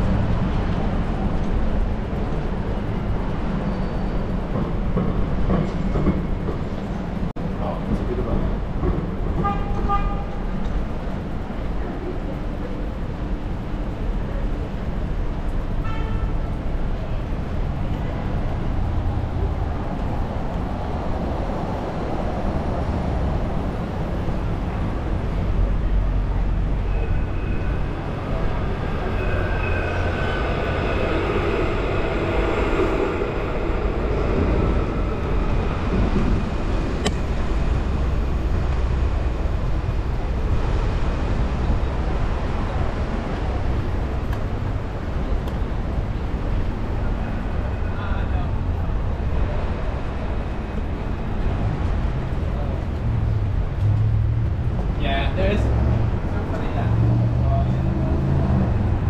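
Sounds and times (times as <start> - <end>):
electric tram whine: 0.0 - 59.0
street traffic rumble: 0.0 - 59.0.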